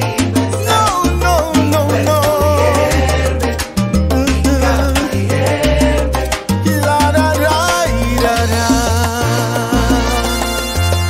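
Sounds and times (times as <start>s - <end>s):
salsa band playing: 0.0s - 11.0s.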